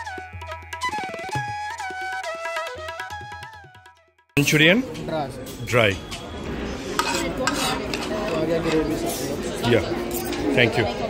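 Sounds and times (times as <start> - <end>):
cutlery scraping and clinking: 6.8 - 10.8.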